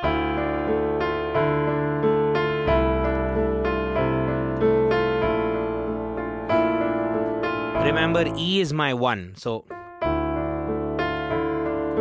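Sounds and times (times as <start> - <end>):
slow minor-key piano: 0.0 - 8.6, 9.7 - 12.0.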